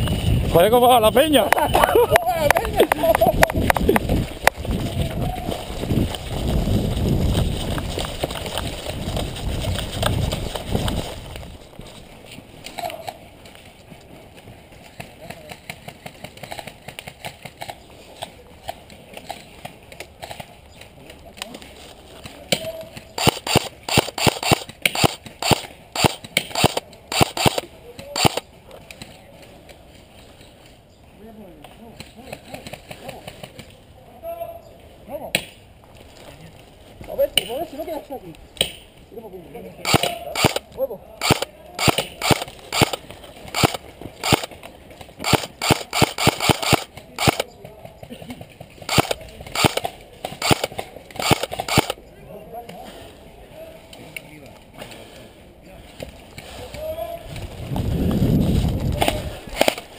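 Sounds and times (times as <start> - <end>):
running footsteps: 0.0 - 17.9
airsoft guns firing: 22.9 - 28.4, 39.8 - 40.6, 41.2 - 44.6, 45.2 - 47.5, 48.9 - 52.0, 59.0 - 59.9.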